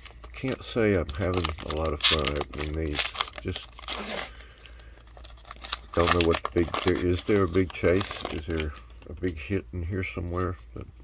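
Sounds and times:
wrapper tearing: 0.0s - 9.4s
wrapper crinkling: 0.0s - 9.6s.

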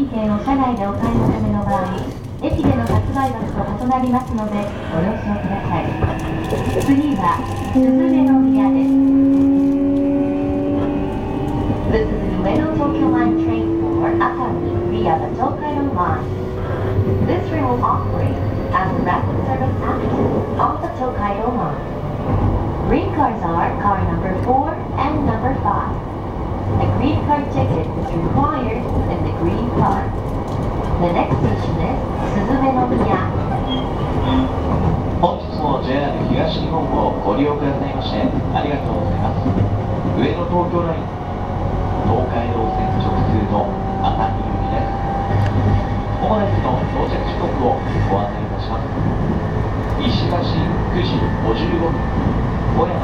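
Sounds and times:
train wheels rumbling on rails: 0.0s - 53.0s
train traction motors whining: 2.7s - 53.0s.

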